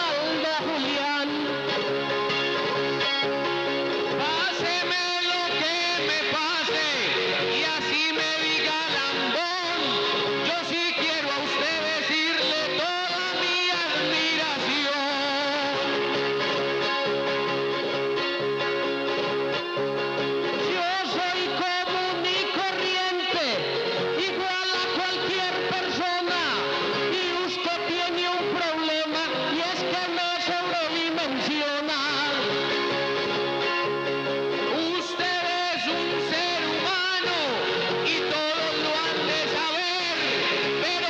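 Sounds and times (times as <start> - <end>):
man singing: 0.0 - 17.4, 20.4 - 41.0
plucked guitars: 0.0 - 41.0.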